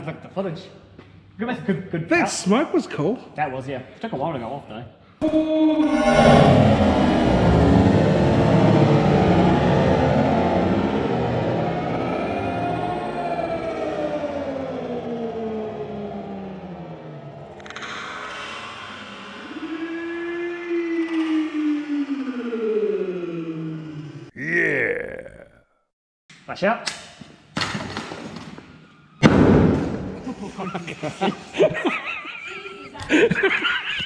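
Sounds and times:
slowed deep voices: 5.2s - 14.8s, 24.3s - 25.8s
slowed grenade blast rush: 5.2s - 14.8s.

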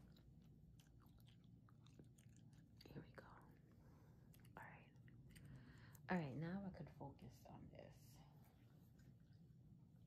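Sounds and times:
gum chewing: 0.0s - 3.0s.

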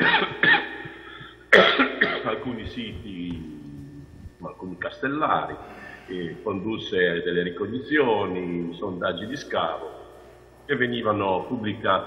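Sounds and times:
man coughing: 0.0s - 3.9s.

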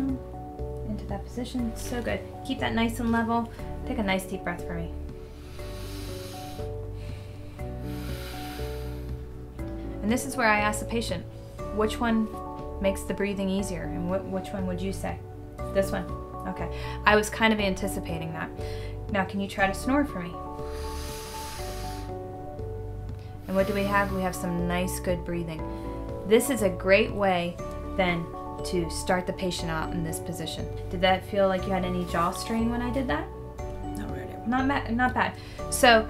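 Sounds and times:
soft background music: 0.0s - 36.0s
woman breathing deeply: 5.1s - 10.0s, 16.7s - 17.0s, 18.6s - 19.1s, 20.5s - 24.4s, 25.6s - 26.2s.

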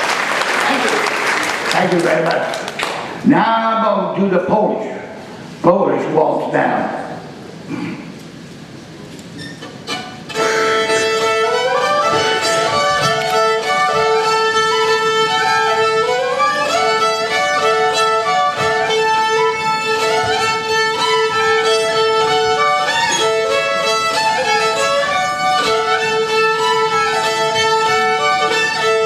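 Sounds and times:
solo fiddle melody: 9.6s - 29.0s.

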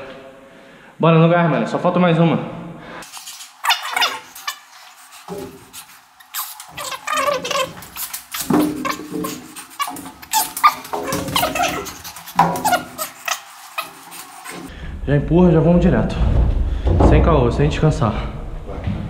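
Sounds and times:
sped-up high-pitched chatter: 3.1s - 14.7s.

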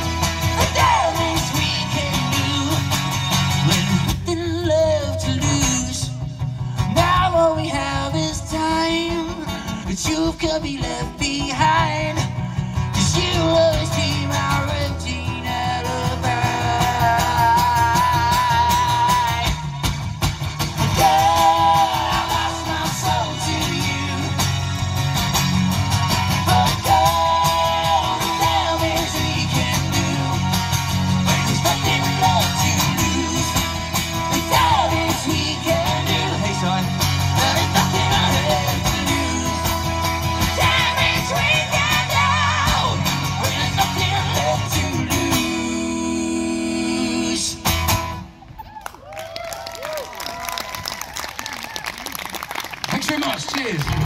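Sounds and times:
person singing with vibrato: 0.0s - 19.9s, 20.8s - 25.0s, 26.1s - 47.7s
acoustic guitar strummed: 0.0s - 48.4s.

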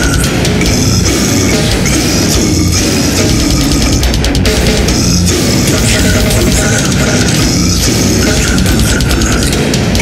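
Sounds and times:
distorted guitars: 0.0s - 10.0s
rapid drumming: 0.0s - 10.0s.

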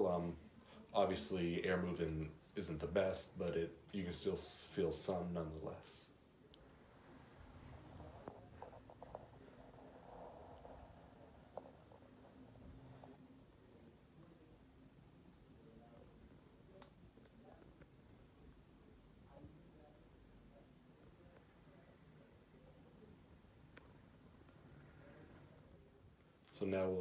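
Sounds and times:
muffled tv murmuring: 0.0s - 27.0s.

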